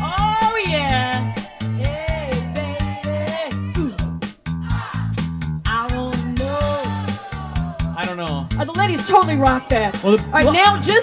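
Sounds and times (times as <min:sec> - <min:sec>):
high voice singing: 0:01.0 - 0:05.1, 0:06.3 - 0:08.1.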